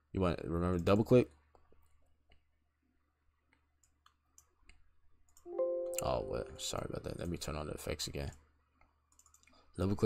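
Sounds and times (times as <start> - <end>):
computer mouse clicks: 3.5 - 5.5, 8.2 - 9.6
steady multi-pitch tone: 5.5 - 7.1.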